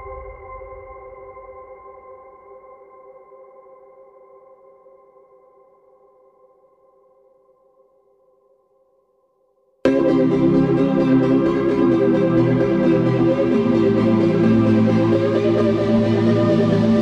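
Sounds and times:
sustained music chord: 9.9 - 17.0.

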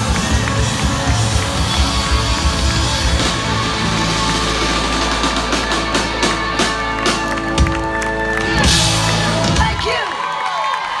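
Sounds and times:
rock band playing: 0.0 - 10.1
crowd cheering and whooping: 0.0 - 11.0.

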